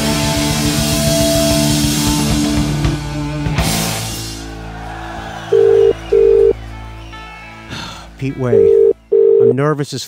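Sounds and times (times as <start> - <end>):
rock music: 0.0 - 9.8
telephone ringback tone: 5.5 - 6.6, 8.5 - 9.5.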